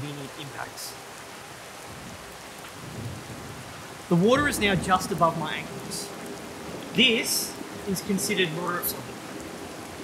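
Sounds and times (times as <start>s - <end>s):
rain falling on water: 0.0s - 10.0s.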